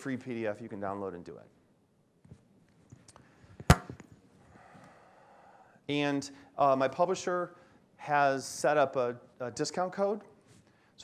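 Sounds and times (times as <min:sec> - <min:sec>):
microphone handling noise: 0:03.6 - 0:04.1.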